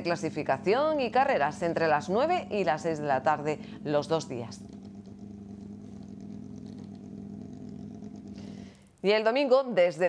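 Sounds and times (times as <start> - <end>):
race car engine idling: 4.6 - 8.9.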